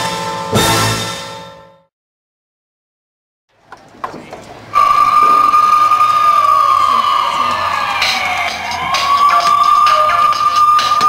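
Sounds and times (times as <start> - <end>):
sharp musical hit: 0.0 - 1.8
siren-like wail: 4.7 - 11.0.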